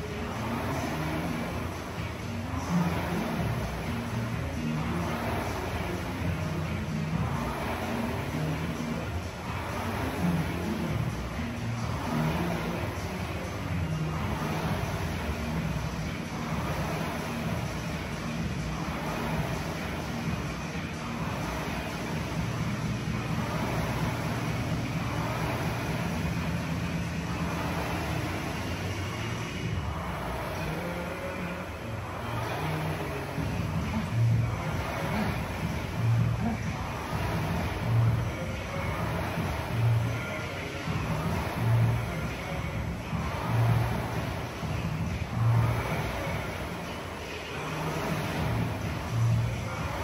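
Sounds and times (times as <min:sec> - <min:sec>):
rowing machine fan whirring: 0:00.0 - 0:50.0.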